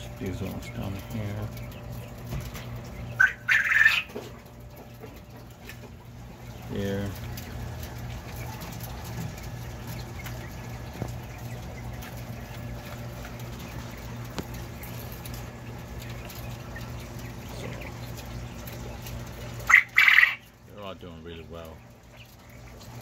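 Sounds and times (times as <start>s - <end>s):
steady low hum: 0.0s - 23.0s
quail calling: 2.8s - 4.4s, 16.1s - 20.6s.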